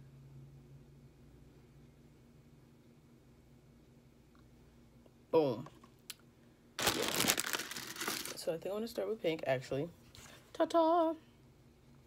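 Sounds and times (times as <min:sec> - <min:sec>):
crinkling handling noise: 0:06.8 - 0:08.4.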